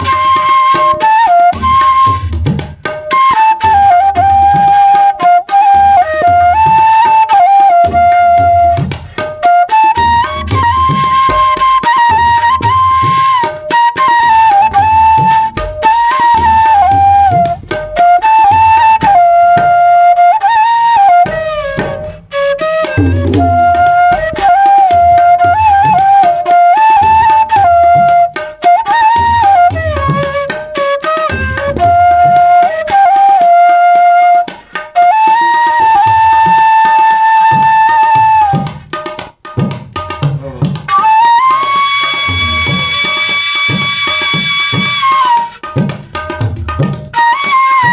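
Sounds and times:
bamboo flute melody: 0.0 - 39.2, 40.0 - 47.9
tabla strokes: 0.0 - 47.9.

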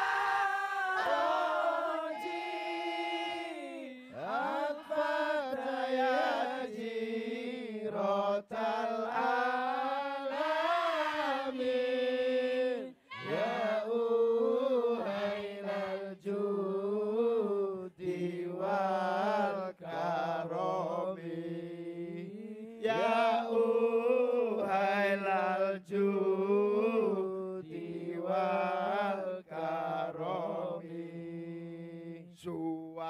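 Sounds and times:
man singing devotional melody: 0.6 - 33.0.

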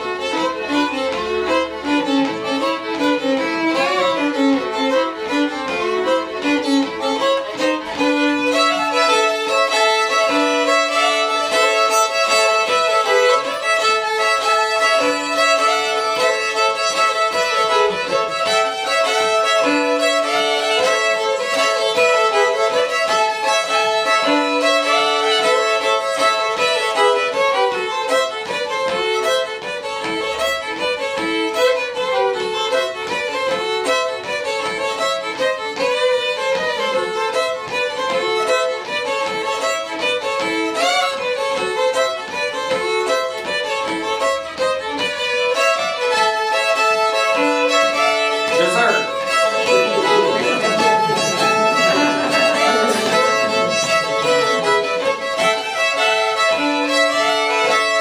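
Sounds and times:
two fiddles playing: 0.0 - 58.0.

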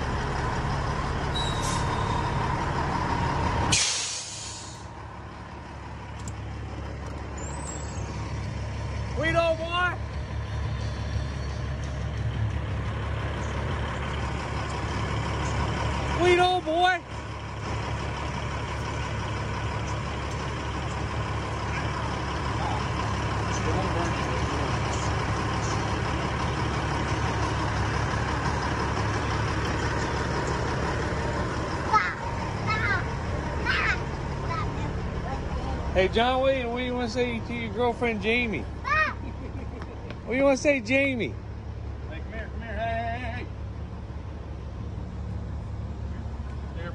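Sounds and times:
diesel truck engine idling: 0.0 - 46.9
child calling out: 31.8 - 35.0, 38.8 - 39.2.

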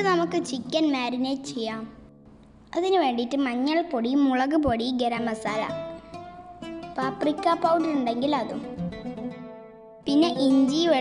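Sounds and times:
plucked string music: 0.0 - 0.5, 5.7 - 11.0
spoken voice: 0.0 - 2.0, 2.7 - 5.8, 7.0 - 8.6, 10.1 - 11.0.

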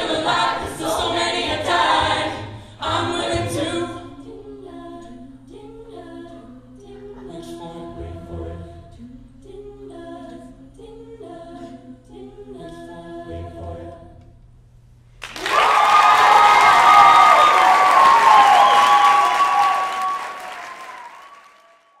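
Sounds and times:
a cappella group singing: 0.0 - 14.4
audience applause and cheering: 15.2 - 22.0.

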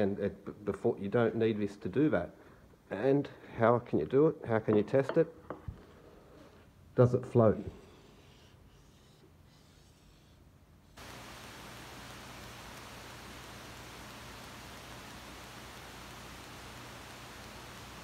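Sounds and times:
steady hiss: 7.8 - 18.0
low hum: 11.0 - 18.0.

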